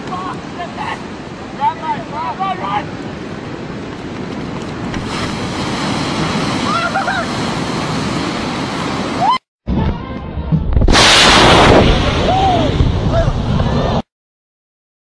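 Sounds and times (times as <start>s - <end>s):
ocean surf breaking: 0.0s - 9.4s, 10.9s - 14.0s
loud rushing blast of noise: 10.7s - 14.0s.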